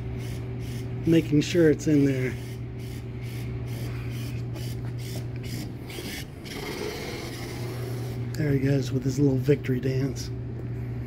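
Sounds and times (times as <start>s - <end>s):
steady low hum: 0.0s - 11.0s
robot motors whirring: 2.4s - 8.2s.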